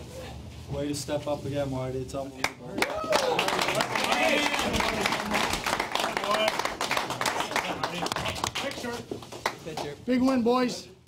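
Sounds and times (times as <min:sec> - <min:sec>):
men clapping: 0:02.4 - 0:10.7
men shouting and talking: 0:02.8 - 0:09.0.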